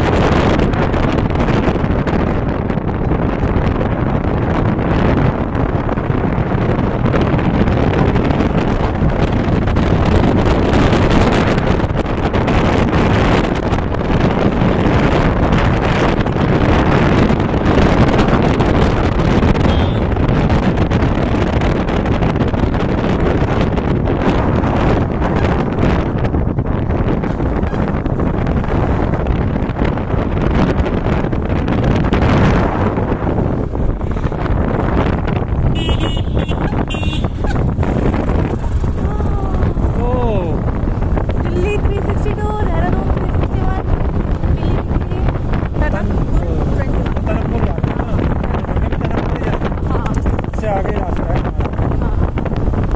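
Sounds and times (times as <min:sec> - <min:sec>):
motorcycle engine: 0:00.0 - 0:52.9
tyre noise on road: 0:00.0 - 0:52.9
wind roaring over microphone: 0:00.0 - 0:52.9.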